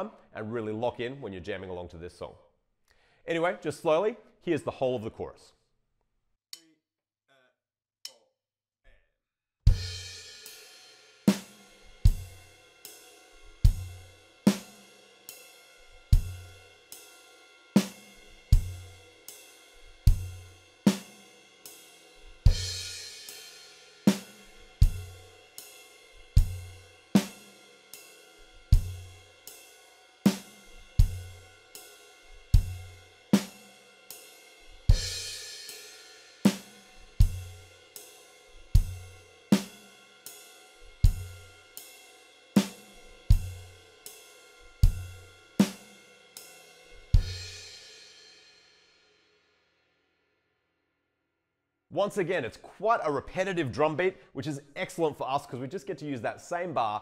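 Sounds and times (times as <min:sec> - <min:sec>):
drum kit rock beat: 0:09.7 - 0:48.0.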